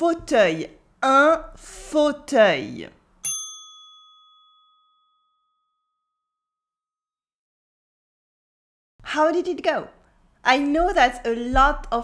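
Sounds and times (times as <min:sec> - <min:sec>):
bell-like chime: 0:03.2 - 0:06.6.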